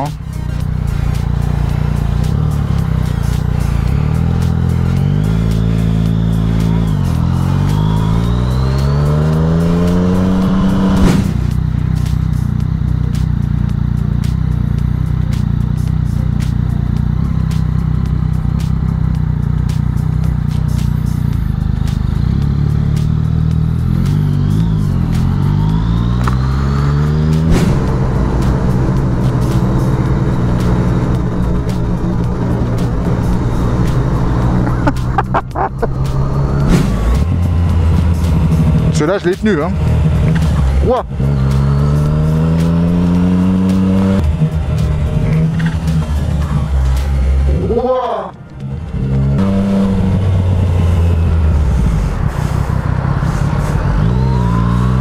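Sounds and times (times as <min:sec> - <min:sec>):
background music: 0:00.0 - 0:55.0.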